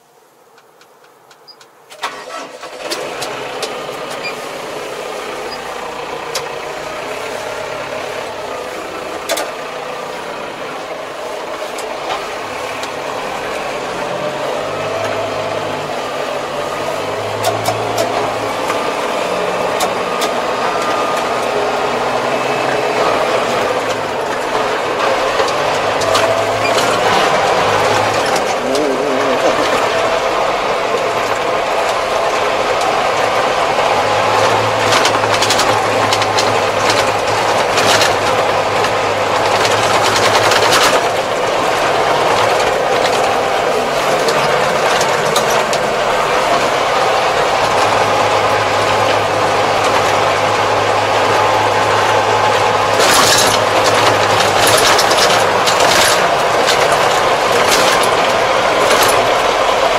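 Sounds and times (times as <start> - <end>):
tractor diesel engine running: 0.0 - 59.9.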